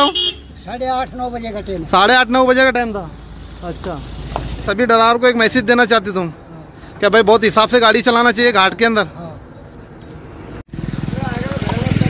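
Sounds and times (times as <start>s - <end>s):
vehicle engine passing: 8.4s - 12.0s.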